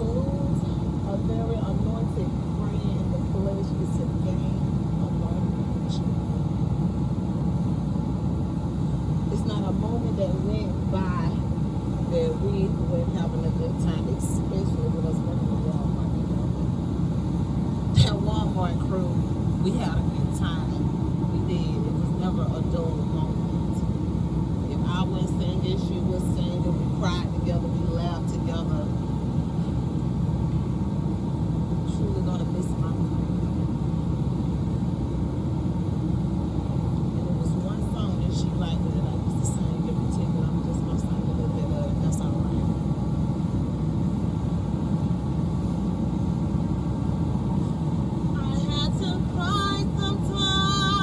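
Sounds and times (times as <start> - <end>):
low rumbling noise: 0.0 - 51.0
faint voices: 48.4 - 51.0
woman singing: 48.4 - 51.0.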